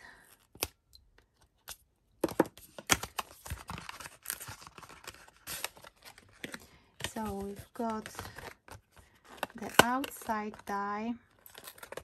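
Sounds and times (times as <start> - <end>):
packaging clicking and rustling: 2.2 - 10.7, 11.4 - 12.0.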